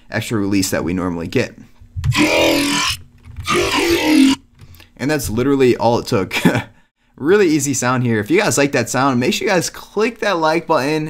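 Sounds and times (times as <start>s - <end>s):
synthesizer growl bass notes: 2.1s - 4.4s.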